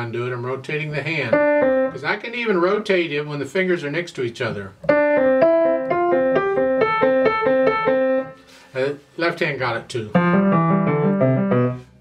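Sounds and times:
grand piano run: 1.2s - 2.6s, 4.9s - 8.3s, 10.1s - 12.0s.

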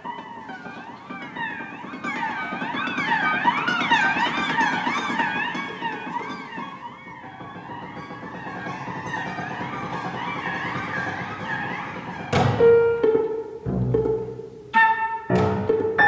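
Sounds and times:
chamber ensemble playing: 7.9s - 16.0s.

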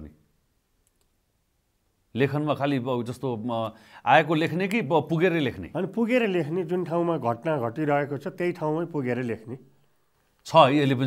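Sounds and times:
faint clicks: 0.8s - 1.2s.

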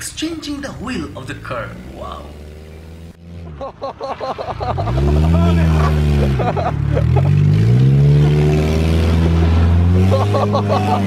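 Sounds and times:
car engine revving: 0.0s - 11.0s
people laughing: 3.5s - 7.5s, 9.2s - 11.0s.

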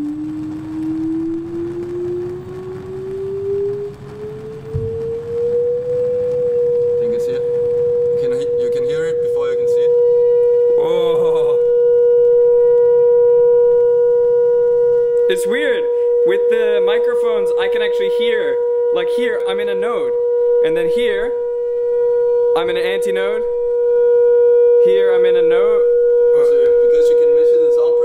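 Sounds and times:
low rumbling noise: 0.0s - 28.0s
rising test tone from loudspeaker: 0.0s - 28.0s.

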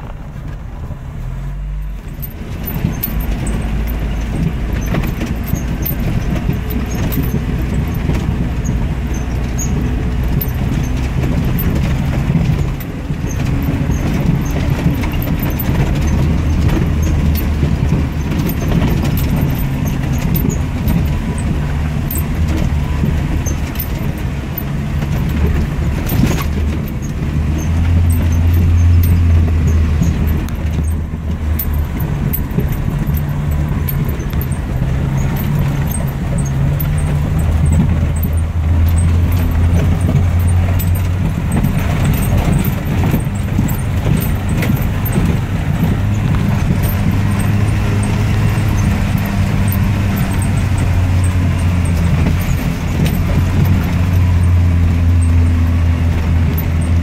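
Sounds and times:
car engine running: 0.0s - 57.0s
rattles and knocks from bumpy ride: 0.0s - 57.0s.

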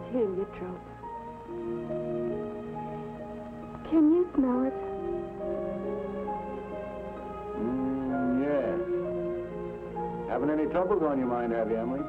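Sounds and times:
orchestral held chords: 0.0s - 12.0s
man's voice: 7.6s - 8.9s.

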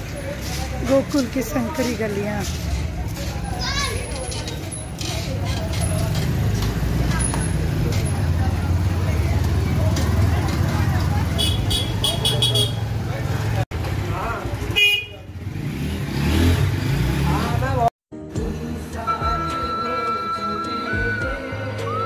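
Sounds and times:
voices: 0.0s - 15.3s
low street rumble: 0.0s - 17.9s
vehicle horn tooting: 11.4s - 12.8s, 14.7s - 15.3s.

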